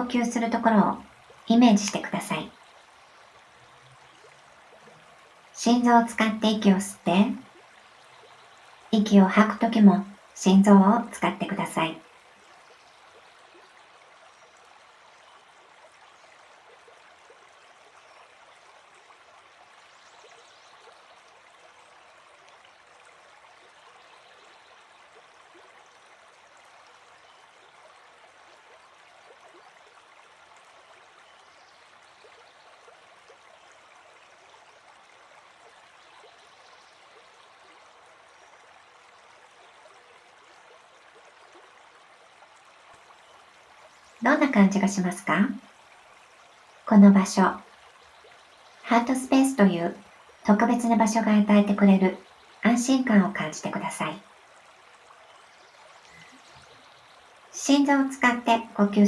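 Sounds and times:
faint flowing water: 0:00.0 - 0:59.0.

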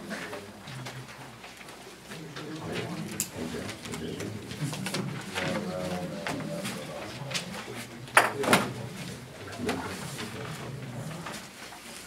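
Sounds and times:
murmuring voices: 0:02.0 - 0:11.5.

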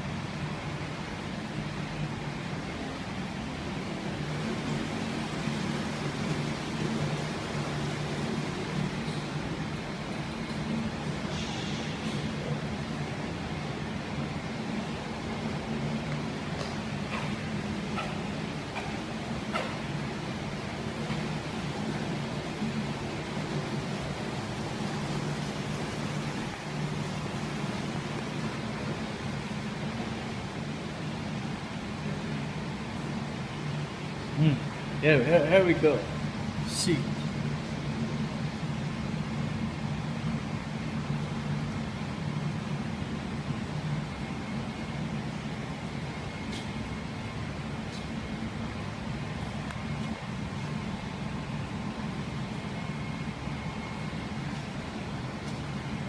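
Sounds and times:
machinery hum with hiss: 0:00.0 - 0:56.0.

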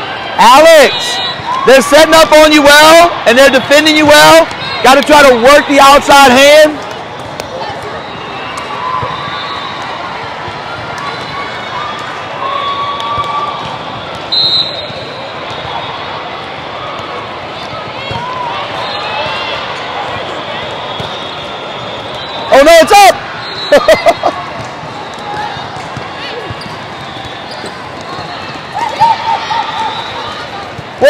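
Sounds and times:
hubbub of distant voices and shouts: 0:00.0 - 0:31.0
referee's whistle blast: 0:14.3 - 0:15.1
volleyballs thudding: 0:24.4 - 0:29.1.

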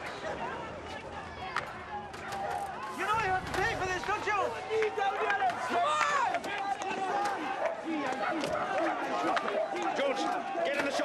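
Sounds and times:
men shouting angrily: 0:01.9 - 0:11.0.

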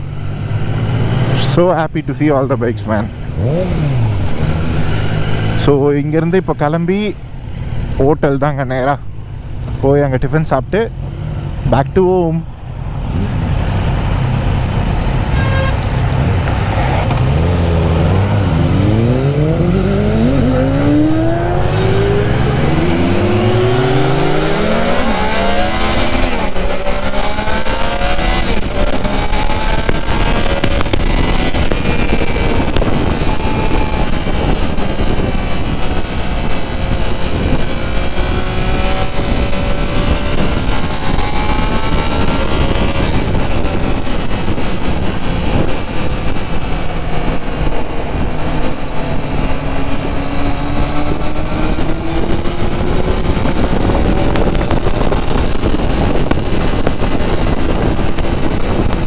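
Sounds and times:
motorcycle engine accelerating: 0:00.0 - 0:06.5, 0:12.5 - 0:59.0
wind noise on microphone: 0:12.8 - 0:59.0.

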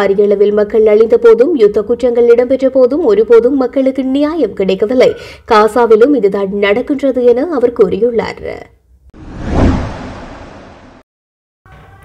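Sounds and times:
whoosh with deep rumble: 0:09.2 - 0:11.0.

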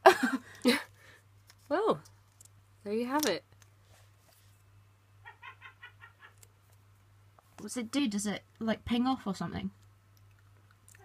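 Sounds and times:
person giggling: 0:00.0 - 0:01.0.

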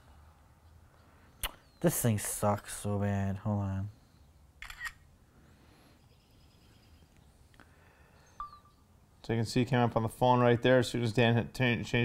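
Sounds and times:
faint electronic beep: 0:08.2 - 0:08.8.

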